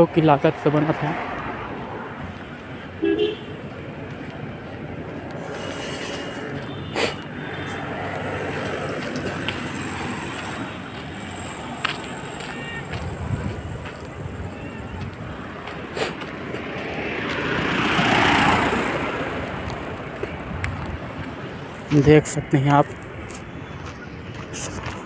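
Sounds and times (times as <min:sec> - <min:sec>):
outdoor background noise: 0:00.0 - 0:25.0
vehicle passing on road: 0:00.0 - 0:25.0.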